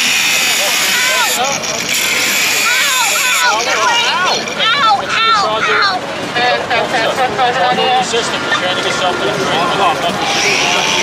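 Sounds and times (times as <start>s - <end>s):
angle grinder cutting metal: 0.0s - 3.6s, 10.2s - 11.0s.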